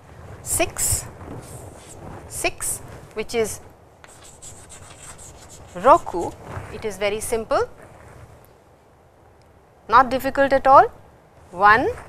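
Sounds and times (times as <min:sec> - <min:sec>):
woman speaking: 0:00.5 - 0:01.1, 0:02.3 - 0:03.7, 0:05.7 - 0:07.8, 0:09.9 - 0:12.0
chalk scratching on chalkboard: 0:04.0 - 0:06.4.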